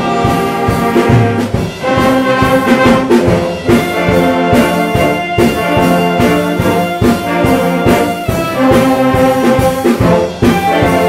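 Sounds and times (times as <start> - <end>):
school band playing: 0.0 - 11.0.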